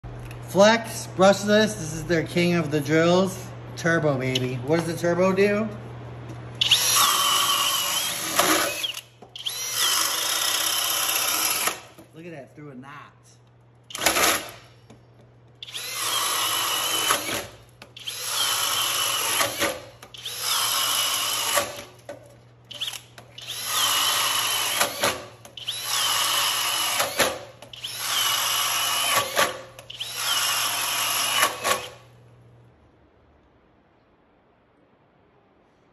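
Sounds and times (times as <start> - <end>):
cordless drill boring through wood: 6.6 - 11.9, 13.9 - 14.6, 15.6 - 21.9, 22.7 - 32.0.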